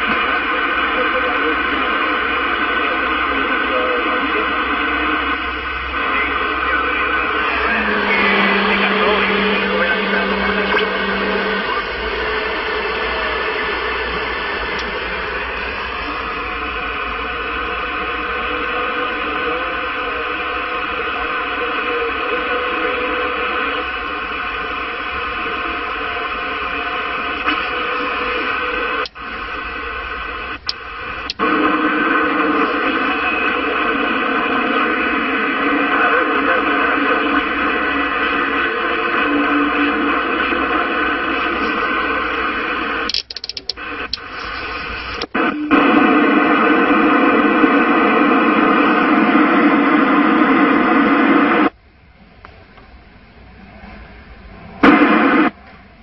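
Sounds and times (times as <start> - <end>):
radio static: 0.0 - 51.8, 54.8 - 55.6
radio clicks: 1.4 - 23.6, 27.3 - 34.0, 37.0 - 51.8.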